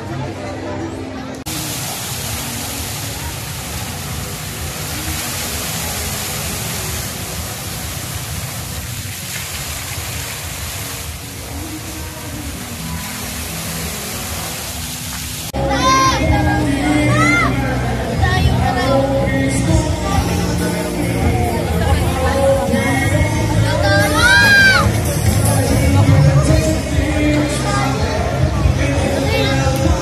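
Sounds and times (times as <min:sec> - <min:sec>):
fountain water jets splashing: 0:00.0 - 0:30.0.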